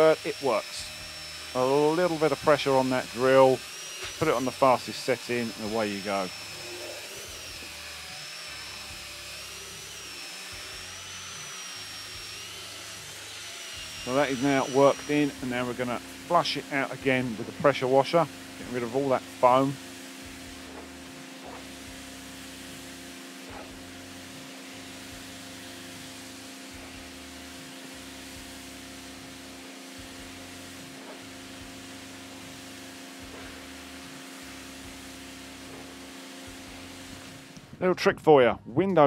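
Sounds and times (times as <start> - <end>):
pressure washer water jet hissing: 0.0 - 37.7
motor hum: 0.0 - 37.8.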